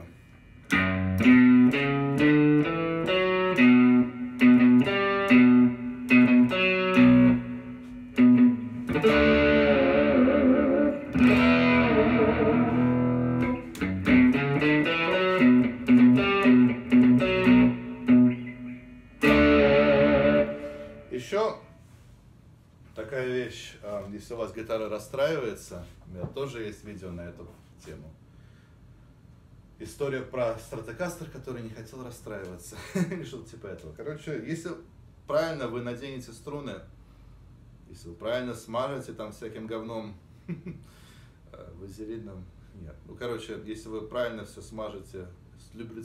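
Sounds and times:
electric guitar riff: 0:00.7 - 0:21.3.

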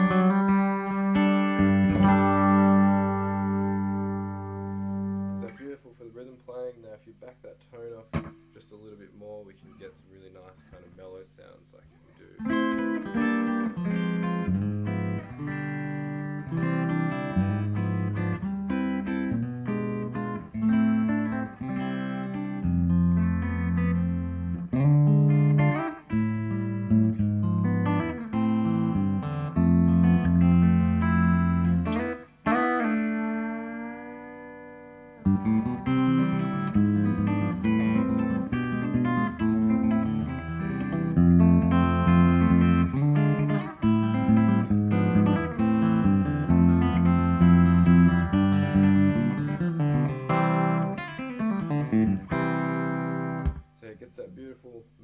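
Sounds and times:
mellow electric guitar chords: 0:00.0 - 0:05.6, 0:08.0 - 0:08.6, 0:12.4 - 0:53.8.

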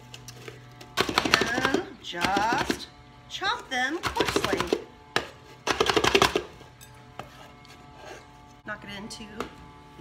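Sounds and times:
hand chopper striking walnuts: 0:00.9 - 0:02.9, 0:03.9 - 0:06.6.

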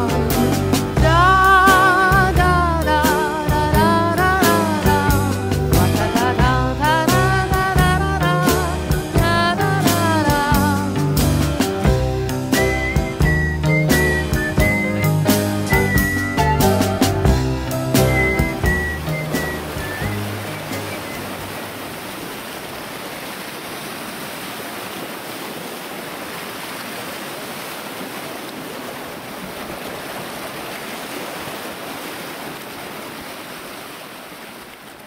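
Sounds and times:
song: 0:00.0 - 0:21.6
water rushing around rocks: 0:12.5 - 0:35.0.

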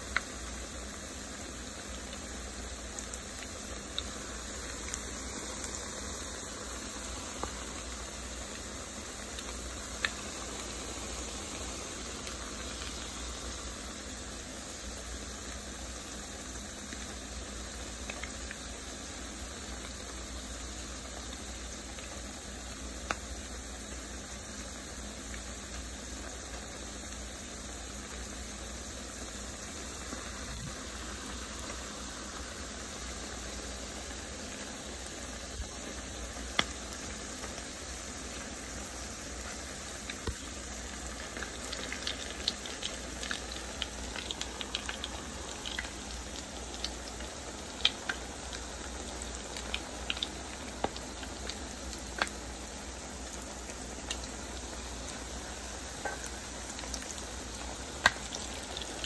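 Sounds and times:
patties sizzling in hot oil: 0:00.0 - 0:59.0.

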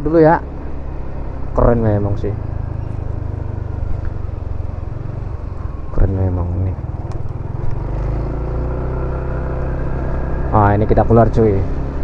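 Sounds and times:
scooter engine hum: 0:00.0 - 0:12.0.

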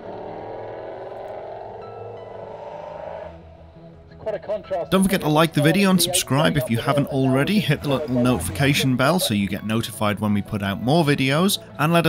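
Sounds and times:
car engine under load: 0:00.0 - 0:03.0.

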